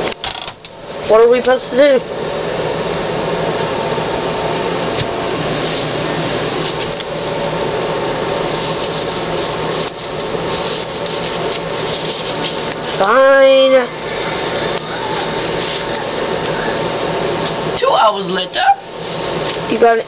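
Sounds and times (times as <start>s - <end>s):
electric blower motor whirring: 2.1s - 17.8s.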